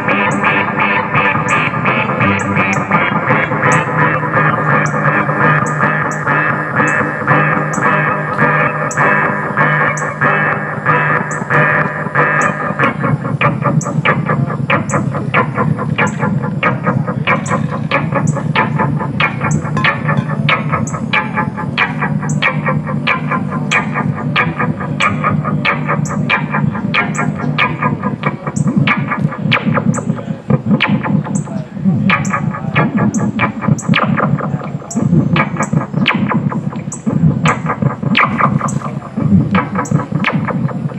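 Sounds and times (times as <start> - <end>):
distorted echoing synth drone: 0.0 - 40.9
high ticking beat: 0.0 - 40.9.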